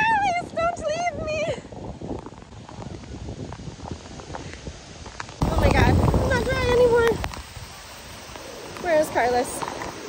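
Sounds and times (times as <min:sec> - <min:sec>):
wind and rain hiss: 0:00.0 - 0:10.0
wind buffeting microphone: 0:00.0 - 0:10.0.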